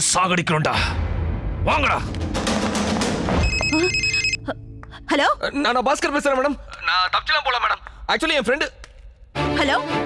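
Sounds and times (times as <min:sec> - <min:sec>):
film soundtrack music: 0:00.7 - 0:10.0
mobile phone ringtone: 0:03.4 - 0:04.4.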